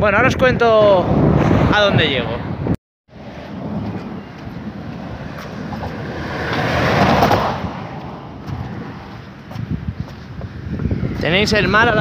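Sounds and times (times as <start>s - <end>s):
vehicle passing: 3.1s - 9.9s
road traffic noise: 3.1s - 11.2s.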